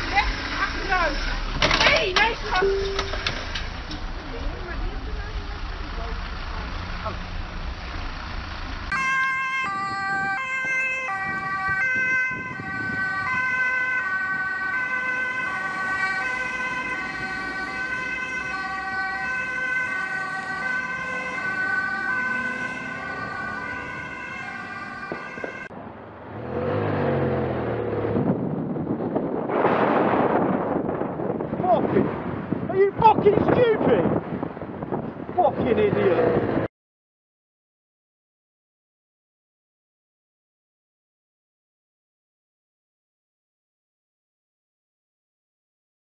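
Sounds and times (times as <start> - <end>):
vehicle engine and road noise: 0.0 - 36.7
two-tone ambulance siren: 8.9 - 25.7.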